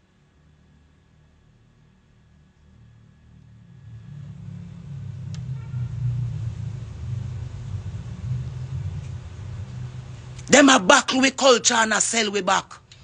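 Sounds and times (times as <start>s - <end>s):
low rumble: 3.3s - 10.6s.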